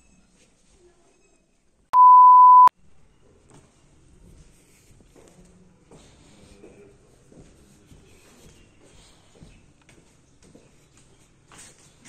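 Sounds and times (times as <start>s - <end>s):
test-tone beep: 2.0s - 2.7s.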